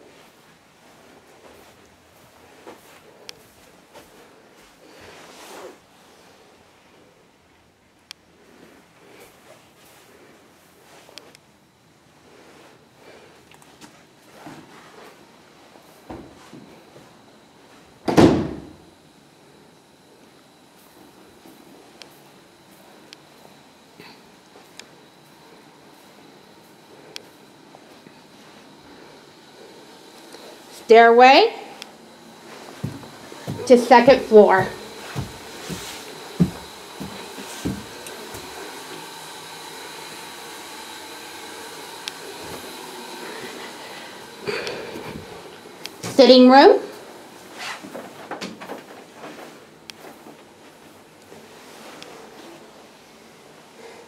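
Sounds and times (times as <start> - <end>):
faint high whine: 0.0 - 54.0
steady low hiss: 0.0 - 54.0
door shutting thud: 18.1 - 18.8.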